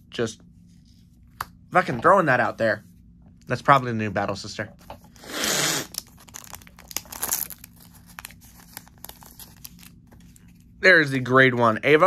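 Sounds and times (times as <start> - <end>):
wrapper tearing open: 5.2 - 10.5
wrapper crinkling: 5.8 - 10.7.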